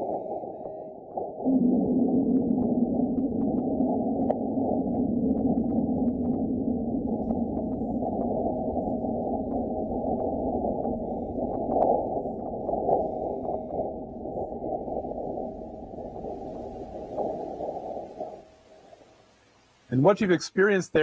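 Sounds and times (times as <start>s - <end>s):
rough rumble with clicks: 1.5s - 19.1s.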